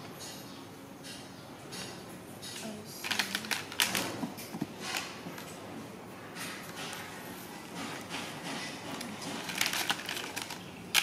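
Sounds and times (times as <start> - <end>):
hard plastic parts clattering: 3.0 - 5.6, 6.4 - 11.0.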